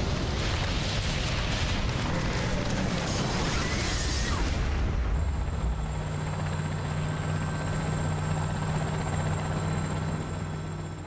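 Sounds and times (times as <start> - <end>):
helicopter engine and rotor drone: 0.0 - 11.0.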